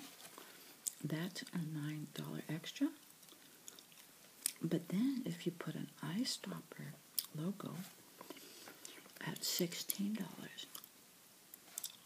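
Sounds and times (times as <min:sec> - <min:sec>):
person speaking softly: 0:00.9 - 0:03.0, 0:04.5 - 0:08.0, 0:08.9 - 0:10.8
gum chewing mouth clicks: 0:03.0 - 0:04.6, 0:11.8 - 0:12.0.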